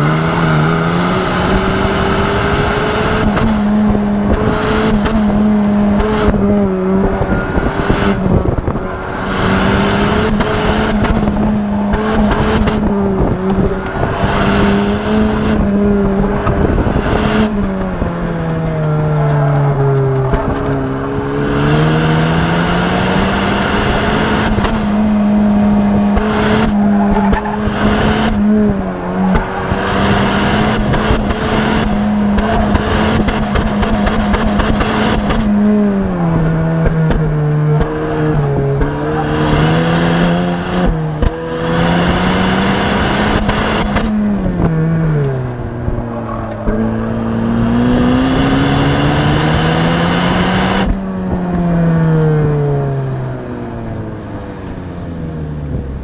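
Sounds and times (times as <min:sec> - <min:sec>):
car engine revving hard: 0:00.0 - 0:56.0.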